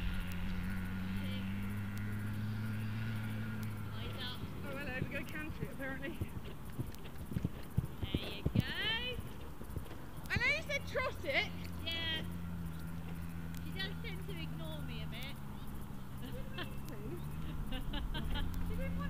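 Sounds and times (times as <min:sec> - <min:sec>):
horse hooves thudding on grass: 0:00.0 - 0:19.0.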